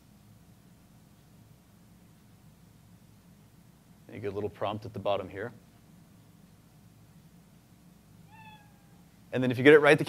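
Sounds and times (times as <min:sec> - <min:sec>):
faint cat meow effect: 0:08.3 - 0:09.1.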